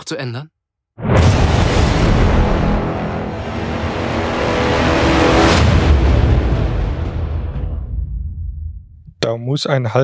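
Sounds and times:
rising whoosh: 0:01.0 - 0:08.0
deep rumble: 0:01.0 - 0:09.0.

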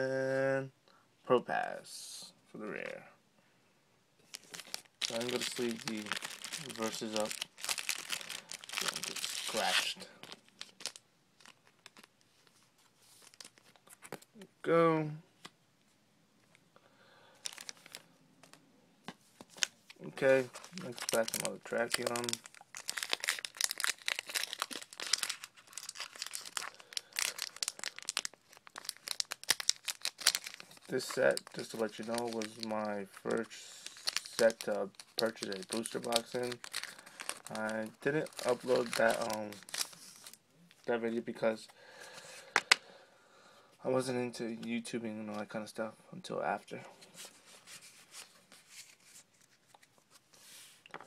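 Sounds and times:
foil wrapper crinkling and tearing: 0:04.3 - 0:12.2, 0:13.1 - 0:14.2, 0:17.4 - 0:18.6, 0:19.5 - 0:40.9.

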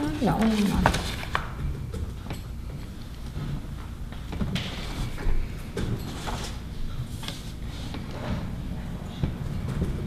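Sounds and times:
paper handling: 0:00.0 - 0:01.6.

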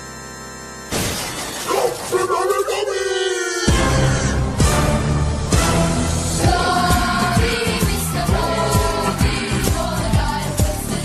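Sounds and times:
electronic keyboard chord: 0:00.0 - 0:01.0
crash and shatter effect: 0:00.9 - 0:02.3.

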